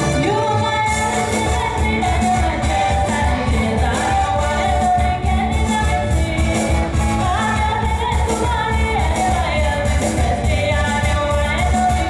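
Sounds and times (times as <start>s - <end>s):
live pop band: 0.0s - 12.0s
woman singing: 0.0s - 12.0s.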